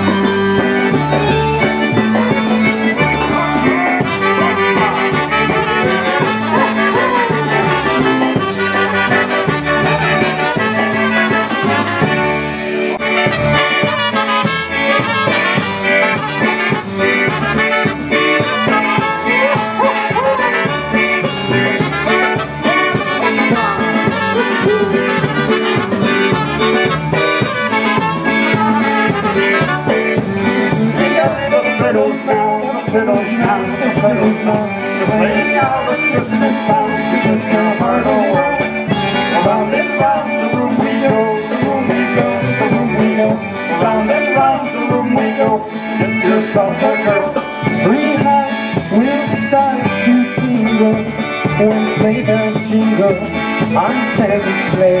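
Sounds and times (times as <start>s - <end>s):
concertina and accordion tune: 0.0s - 55.0s.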